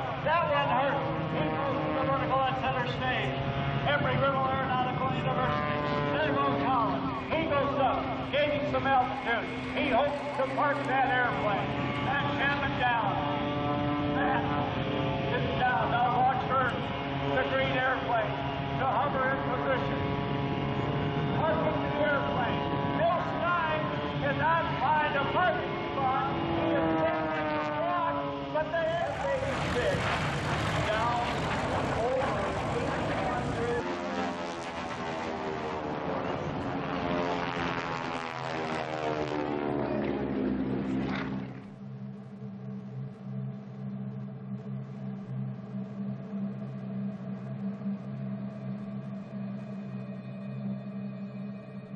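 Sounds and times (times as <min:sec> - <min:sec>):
loudspeaker commentary: 0:00.0 - 0:36.7
propeller planes passing overhead: 0:00.0 - 0:51.9
steady low hum: 0:00.0 - 0:51.9.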